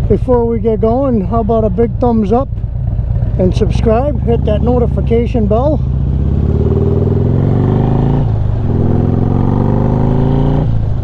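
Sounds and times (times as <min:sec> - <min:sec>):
motorcycle engine accelerating: 0:01.6 - 0:11.0.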